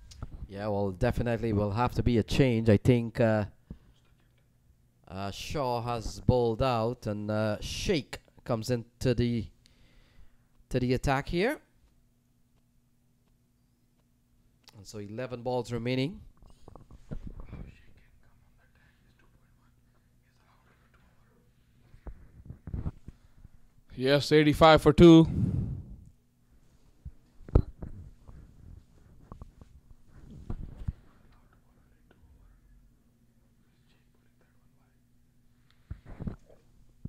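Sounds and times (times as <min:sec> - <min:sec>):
faint low hum: 0:00.0 - 0:37.0.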